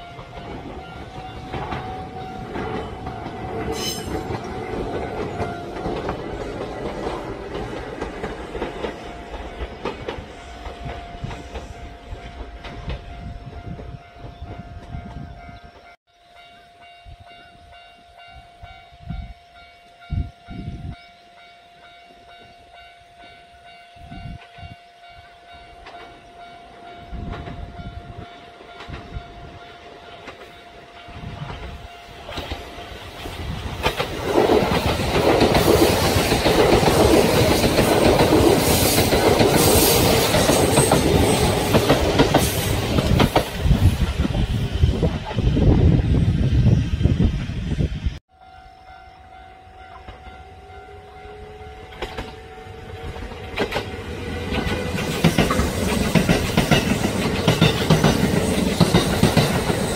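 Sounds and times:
train wheels clattering over rail joints: 0.2 - 15.1, 31.4 - 45.4, 53.1 - 59.9.

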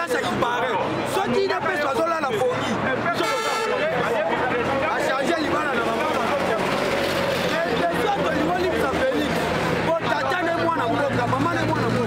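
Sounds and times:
crowd chatter: 0.0 - 12.0
man talking loudly: 7.4 - 12.0.

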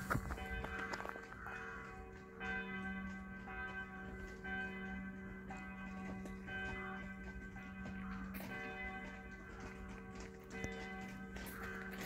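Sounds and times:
church bell tolling: 0.0 - 12.0.

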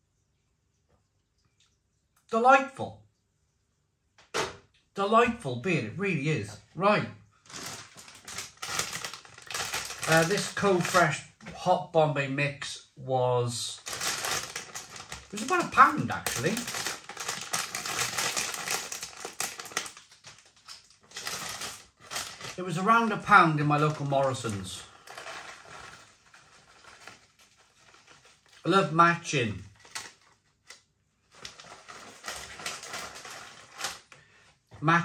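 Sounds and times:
plastic packet crackling rustle: 7.4 - 11.2, 13.8 - 34.2.

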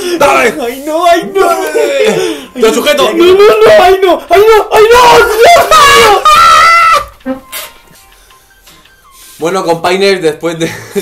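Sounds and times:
man crying out: 0.0 - 7.2.

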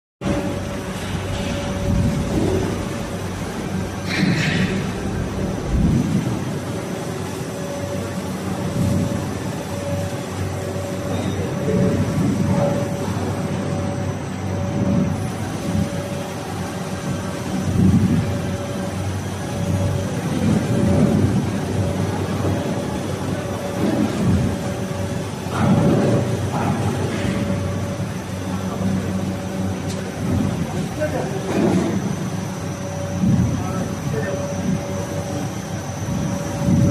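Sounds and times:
machine hum: 0.2 - 36.9.

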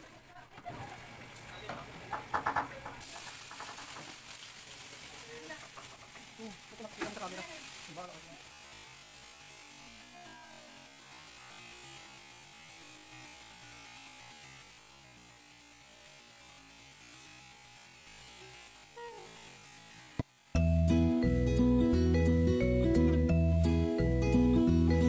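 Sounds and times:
vegetables sizzling: 0.0 - 25.0.

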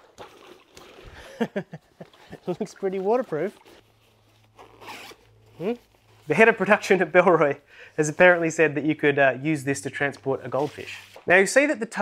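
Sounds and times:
zipper pulled open: 3.5 - 5.9.

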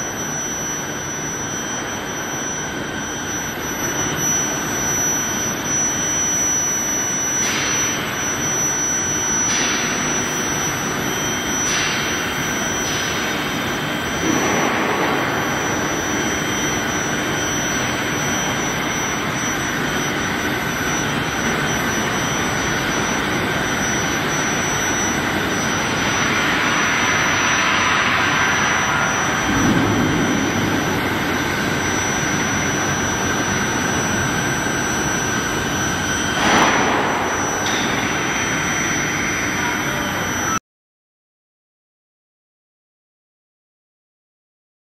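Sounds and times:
high-pitched steady tone: 0.0 - 40.6
loud machinery roar: 0.0 - 40.6.

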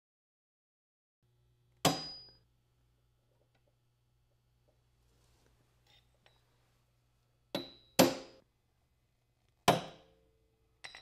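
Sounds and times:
hammer tapping metal punch: 1.8 - 2.4, 7.5 - 8.4, 9.6 - 10.2
high metallic ring: 1.9 - 2.5.

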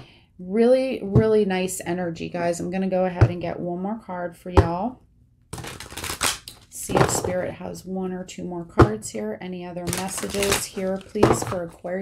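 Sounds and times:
cards being shuffled: 5.6 - 6.7, 9.9 - 11.2.

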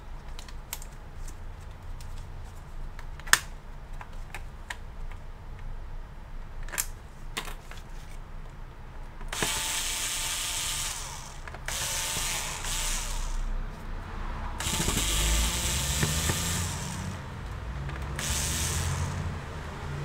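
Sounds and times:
electric screwdriver running: 9.3 - 13.5, 14.6 - 17.2, 18.1 - 19.3.

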